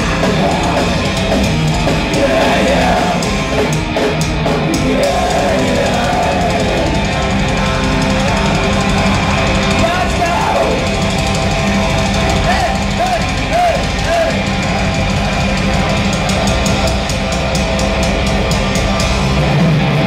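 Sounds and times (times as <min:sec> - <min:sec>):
live heavy metal band: 0:00.0 - 0:20.0
rapid drum hits: 0:00.0 - 0:20.0
wavering high guitar notes: 0:00.0 - 0:20.0.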